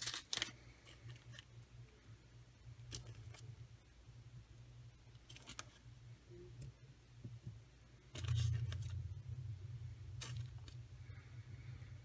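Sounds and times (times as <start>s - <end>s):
plastic card clicks and rustles: 0.0s - 1.5s, 5.2s - 5.8s.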